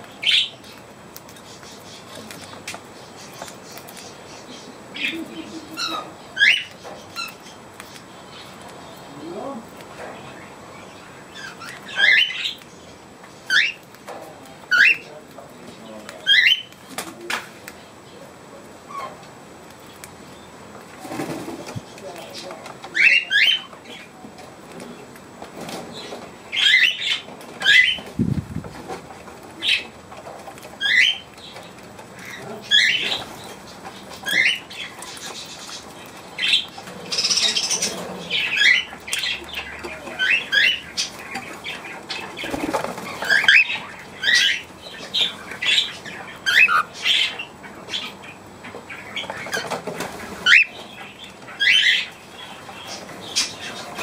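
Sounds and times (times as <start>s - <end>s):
birds chirping: 0.0s - 54.0s.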